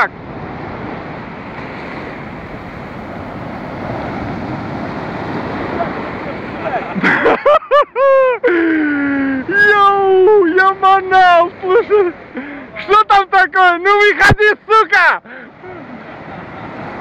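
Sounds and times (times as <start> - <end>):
sea surf breaking: 0.0 - 17.0.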